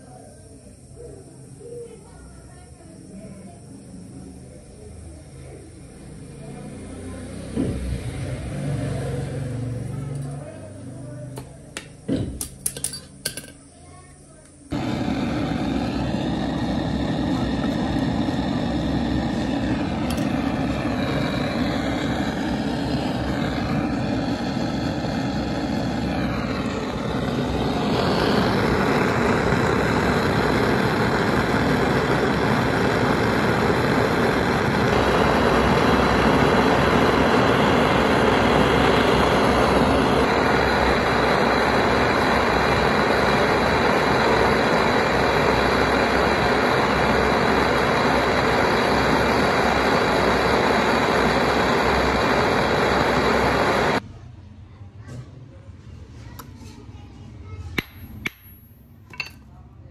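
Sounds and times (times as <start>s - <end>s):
gas torch flame rushing: 3.9s - 13.6s, 14.7s - 54.0s.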